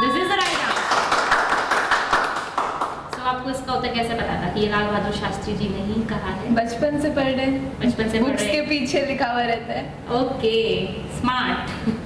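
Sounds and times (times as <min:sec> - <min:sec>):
fast dense applause: 0:00.4 - 0:03.1.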